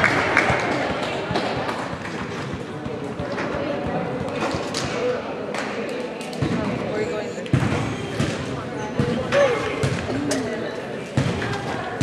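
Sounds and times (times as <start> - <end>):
murmur of crowd and players: 0.0 - 12.0.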